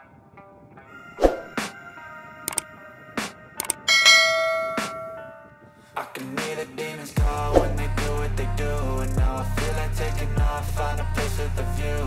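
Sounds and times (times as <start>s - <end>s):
mouse click: 3.6s - 3.8s
notification bell ding: 3.6s - 5.3s.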